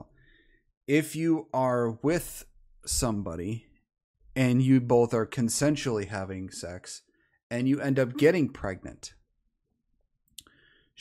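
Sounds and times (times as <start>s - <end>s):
faint breath: 0.1s - 0.7s, 10.4s - 11.0s
man speaking: 0.9s - 3.7s, 4.4s - 9.2s.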